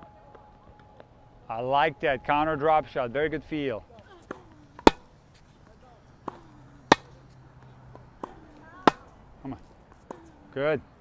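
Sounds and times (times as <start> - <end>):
tennis ball bouncing on hard court: 4.0 - 5.2, 6.2 - 9.2
tennis ball struck with racquet: 4.2 - 5.2, 6.2 - 9.2.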